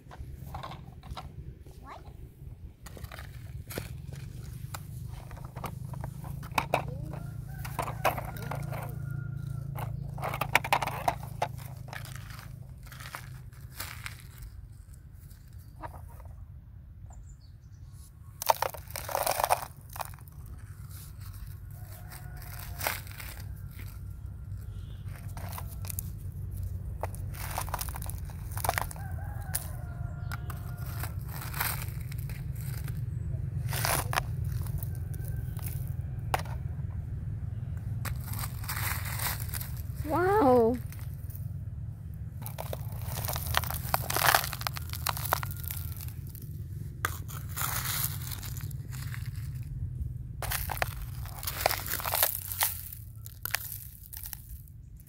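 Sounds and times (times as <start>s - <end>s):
toy shovel scraping gravel: 2.8s - 16.2s, 18.0s - 36.6s, 38.0s - 41.4s, 42.4s - 49.7s, 50.4s - 54.7s
gravel tipped into plastic truck: 42.4s - 46.4s.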